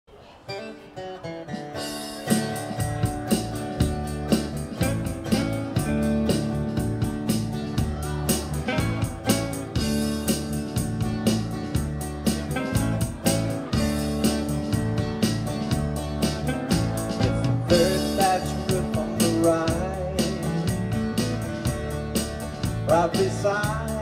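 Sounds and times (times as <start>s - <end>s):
guitar notes: 0.5s - 24.0s
live band playing: 0.8s - 24.0s
drums and bass: 1.4s - 24.0s.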